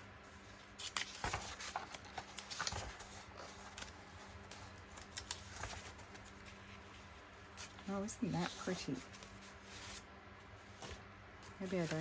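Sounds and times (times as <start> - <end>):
paper rustling: 0.3 - 12.0.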